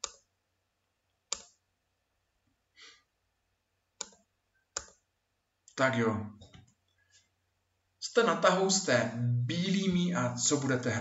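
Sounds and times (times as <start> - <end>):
soft breath: 2.7 - 3.1.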